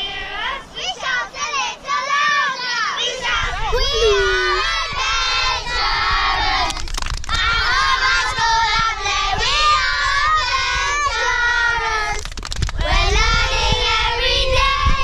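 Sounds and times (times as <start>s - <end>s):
children shouting and chanting: 0.0s - 12.2s, 12.8s - 15.0s.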